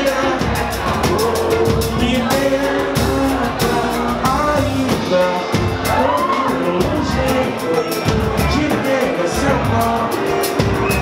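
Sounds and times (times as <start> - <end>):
hand percussion band with cavaquinho: 0.0 - 11.0
man singing: 0.0 - 11.0.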